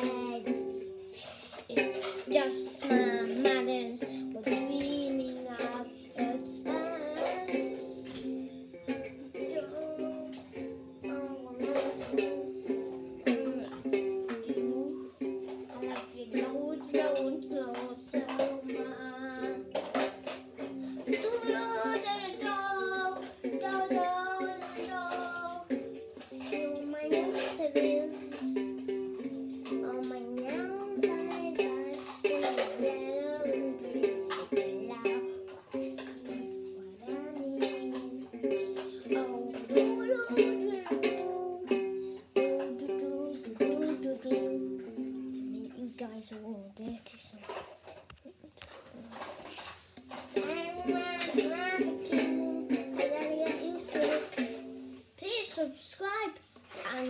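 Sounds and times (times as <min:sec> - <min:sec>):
child singing: 0:00.0 - 0:47.6, 0:49.1 - 0:57.0
strummed string instrument: 0:00.0 - 0:57.0.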